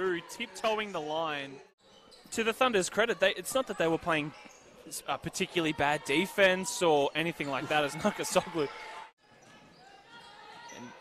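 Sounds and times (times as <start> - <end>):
basketball game ambience: 0.0 - 11.0.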